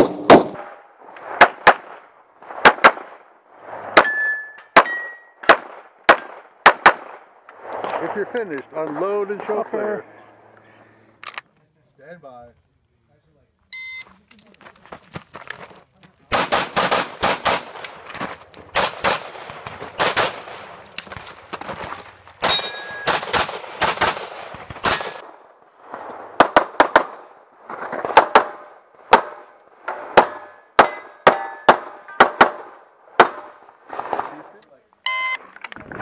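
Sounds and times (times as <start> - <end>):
pistol shots: 4.0 - 7.2, 16.3 - 18.0, 18.7 - 20.7, 22.4 - 25.4
shot timer beep: 13.7 - 14.1, 35.1 - 35.4.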